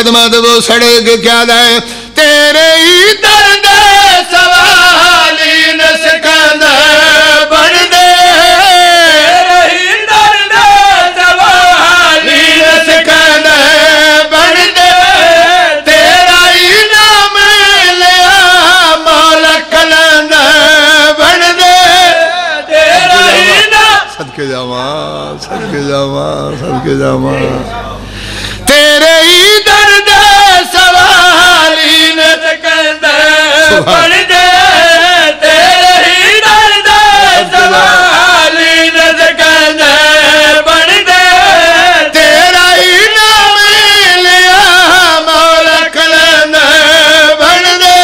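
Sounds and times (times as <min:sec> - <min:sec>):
man chanting through microphone: 0:00.0 - 0:48.0.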